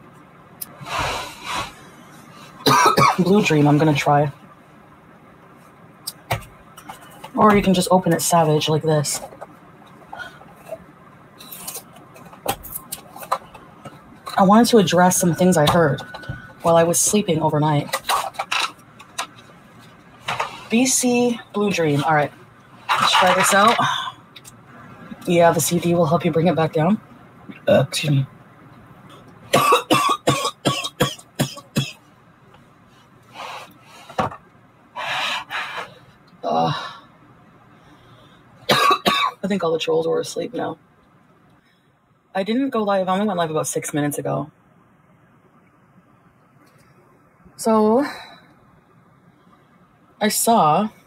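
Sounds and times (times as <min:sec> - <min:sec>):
woman coughing: 0:02.6 - 0:03.5, 0:29.5 - 0:32.0, 0:38.7 - 0:39.4.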